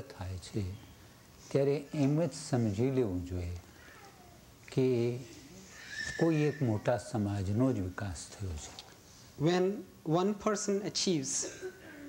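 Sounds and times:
man speaking: 0.0 - 0.8, 1.4 - 3.7, 4.7 - 5.4, 6.0 - 11.6.

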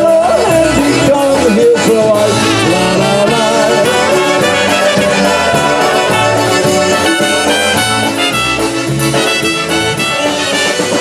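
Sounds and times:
accordion: 0.0 - 11.0
drums: 0.0 - 11.0
trumpet melody: 0.2 - 11.0
saxophone: 1.8 - 11.0.

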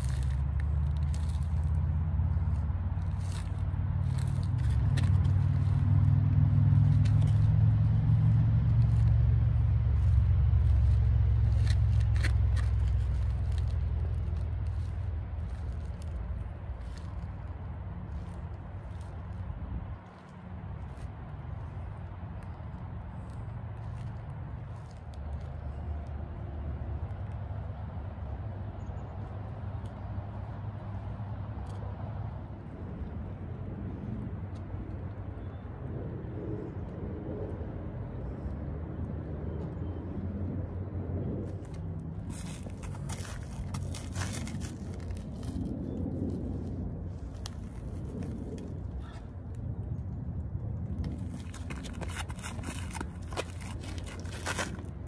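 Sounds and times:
sneakers on gritty pavement: 0.0 - 26.2, 41.3 - 49.3, 50.8 - 55.0
vehicle engine rumble: 0.0 - 55.0.

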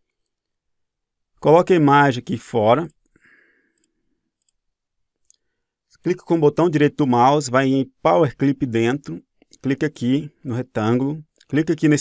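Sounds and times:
computer mouse clicks: 2.8 - 4.6.

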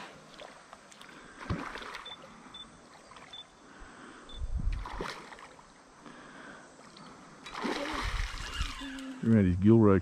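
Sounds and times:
fish splashing at water surface: 7.5 - 9.2.

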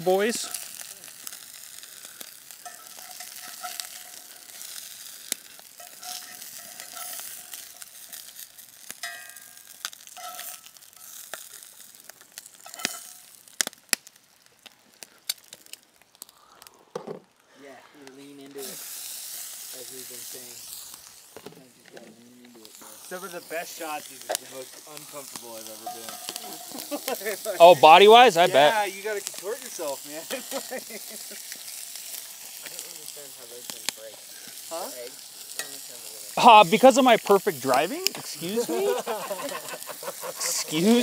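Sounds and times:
fish sizzling in a skillet: 0.0 - 41.0
sharp popping of frying fat: 0.0 - 41.0.

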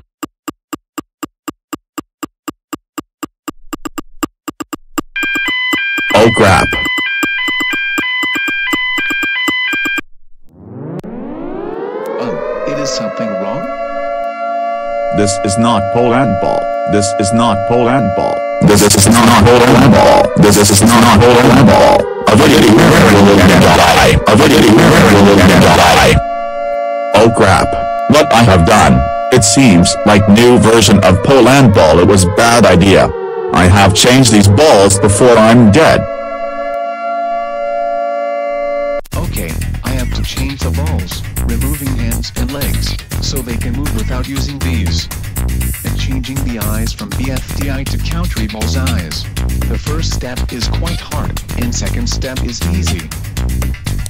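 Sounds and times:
electronic phone alert beeps: 5.2 - 10.1
siren-like electronic tone: 5.2 - 39.0.

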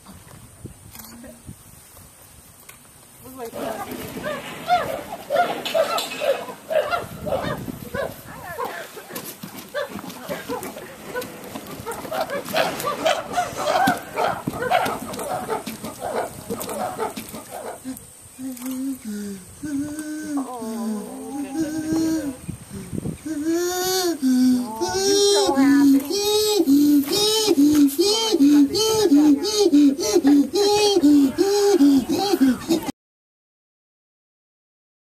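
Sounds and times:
chimpanzees hooting and calling: 3.6 - 32.9
low drawn-out voice: 17.8 - 32.9.

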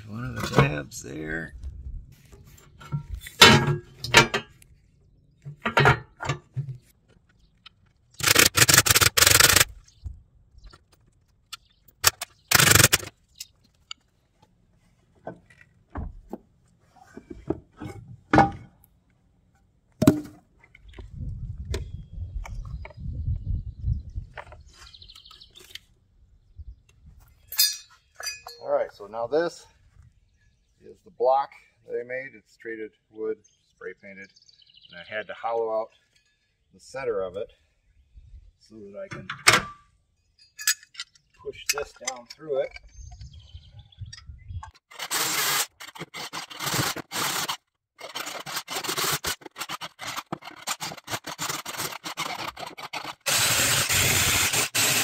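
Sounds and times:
metal tools knocking and scraping: 2.6 - 4.6, 5.4 - 6.8, 27.5 - 28.6, 39.1 - 43.2
loud noisy bursts: 53.3 - 55.0.

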